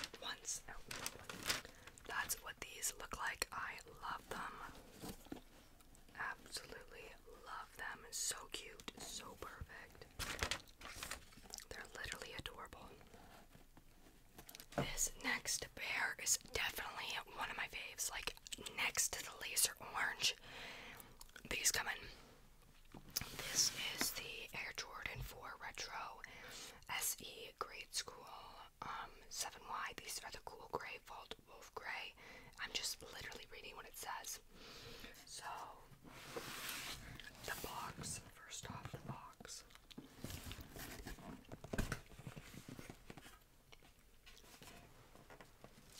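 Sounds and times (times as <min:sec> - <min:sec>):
soft whispering into microphone: 0:00.0 - 0:05.4, 0:06.1 - 0:10.1, 0:11.5 - 0:13.2, 0:14.7 - 0:20.4, 0:21.4 - 0:22.2, 0:23.2 - 0:34.5, 0:35.1 - 0:41.2.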